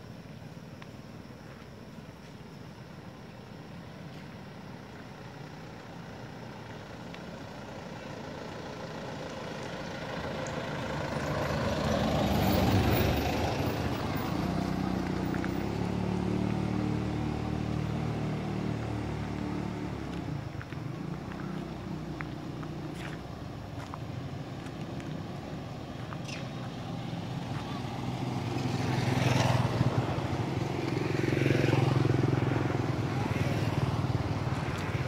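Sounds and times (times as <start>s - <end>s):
steady engine hum: 0.0s - 35.0s
vehicle passing: 7.5s - 35.0s.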